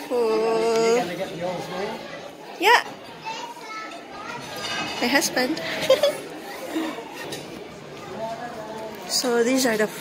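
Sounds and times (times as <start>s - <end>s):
diners chattering: 0.0s - 10.0s.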